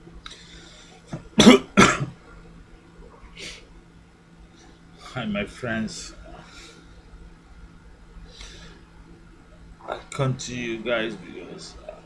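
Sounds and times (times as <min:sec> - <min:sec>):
man coughing: 0:01.4 - 0:02.2.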